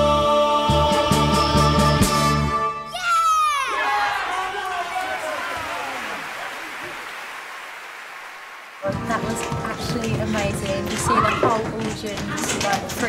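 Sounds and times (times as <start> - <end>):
audience cheering: 2.9 - 9.2
applause: 4.1 - 13.0.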